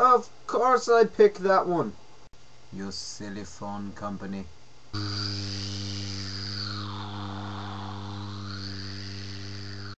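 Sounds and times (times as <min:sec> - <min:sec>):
synthesized electronic drone: 0:05.0 - 0:10.0.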